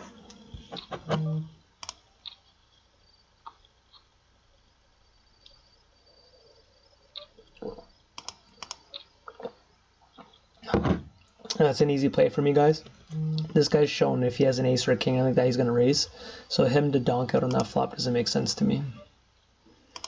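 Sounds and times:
computer mouse clicks: 1.8 - 2.4, 8.2 - 9.1.

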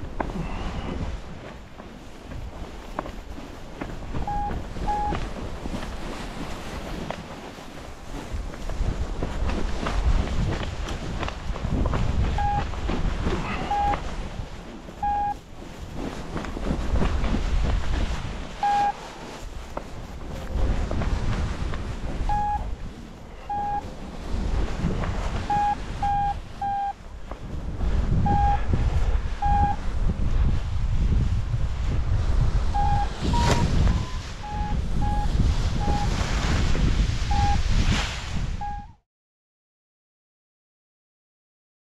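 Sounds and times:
wind buffeting microphone: 0.0 - 39.0
variometer short beeps: 4.2 - 5.2, 12.4 - 12.7, 13.6 - 14.0, 15.0 - 15.4, 18.6 - 19.0, 22.3 - 22.7, 23.4 - 23.9, 25.5 - 27.0, 28.2 - 28.7, 29.4 - 29.8, 32.8 - 36.1, 37.3 - 37.7, 38.6 - 39.0.

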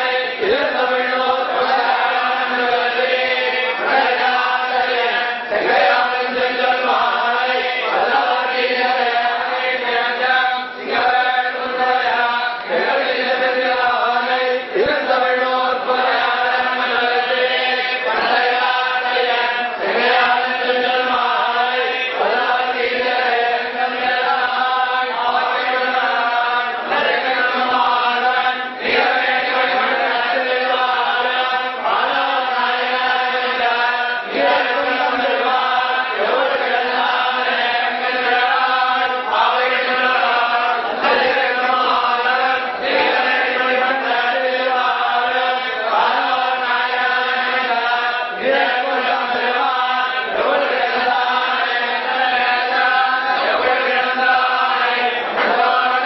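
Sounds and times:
men chanting in unison: 0.0 - 56.0.

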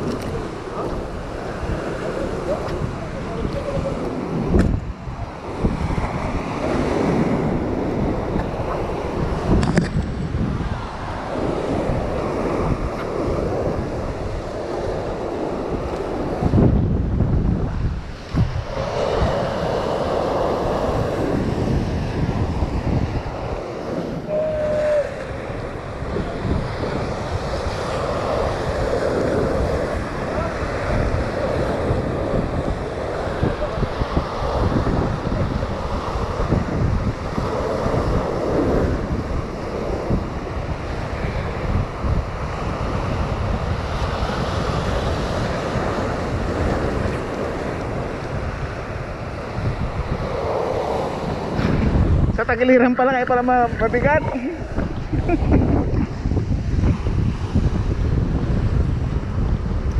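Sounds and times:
surf breaking against rocks: 0.0 - 52.4
wind buffeting microphone: 0.0 - 59.9.

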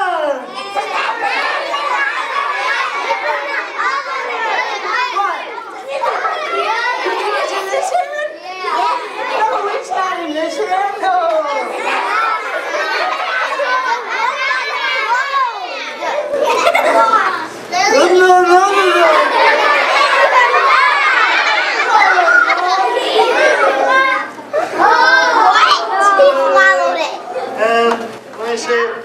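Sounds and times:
children calling out and chattering: 0.0 - 29.0.

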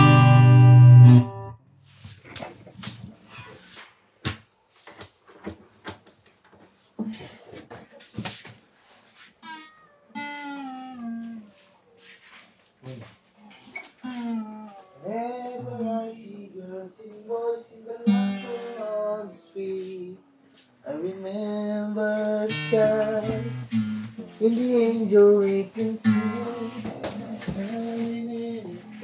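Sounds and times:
acoustic guitar: 0.0 - 1.6, 9.2 - 29.0.

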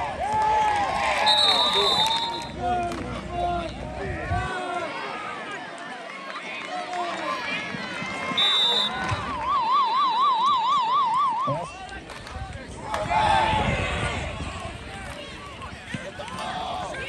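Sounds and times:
crowd shouting and cheering: 0.0 - 17.0
short shrill whistle: 1.2 - 2.5, 8.4 - 11.6.

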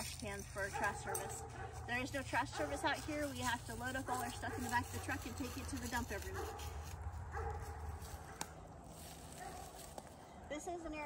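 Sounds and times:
faint dog bark: 9.4 - 9.7.

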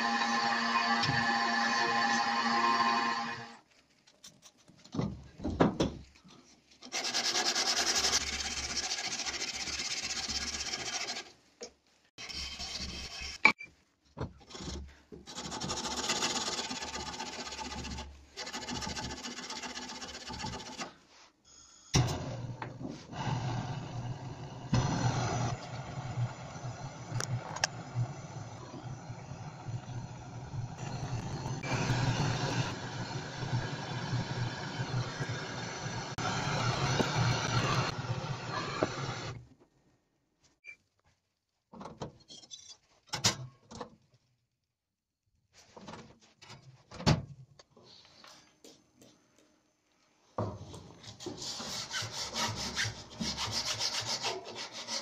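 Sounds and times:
blowtorch hissing: 23.2 - 39.4
sandpaper rubbing on steel: 51.2 - 55.0.

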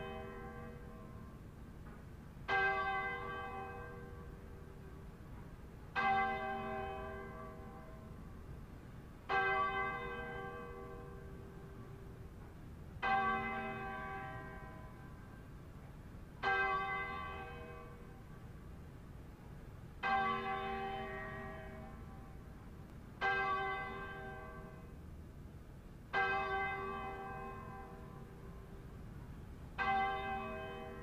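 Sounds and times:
church bell tolling: 0.0 - 1.4, 2.5 - 5.0, 5.9 - 8.4, 9.3 - 12.2, 13.0 - 15.4, 16.4 - 18.3, 20.0 - 22.4, 23.2 - 25.1, 26.1 - 28.8, 29.7 - 31.0.

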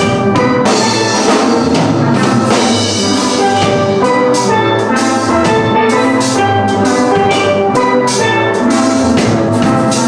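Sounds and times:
steel drum orchestra playing: 0.0 - 10.0.

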